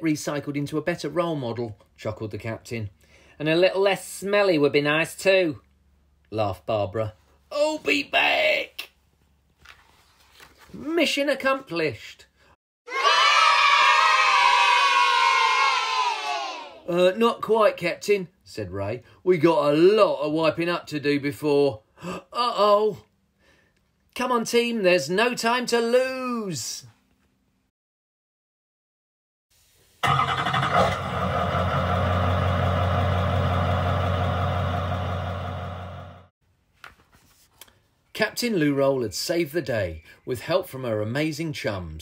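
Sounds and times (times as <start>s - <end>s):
children cheering: 12.9s - 16.8s
lorry engine humming: 30.0s - 36.3s.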